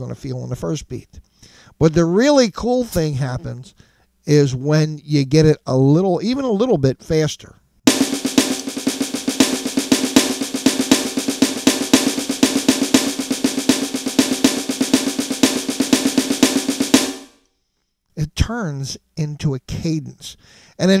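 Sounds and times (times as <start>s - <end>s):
electronic snare drum sticking: 7.9s - 17.4s.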